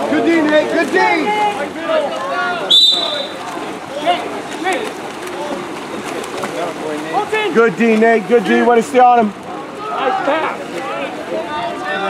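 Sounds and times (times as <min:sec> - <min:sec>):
spectators' voices: 0:00.0 - 0:12.0
water splashing: 0:00.0 - 0:12.0
referee whistle blast: 0:02.7 - 0:03.4.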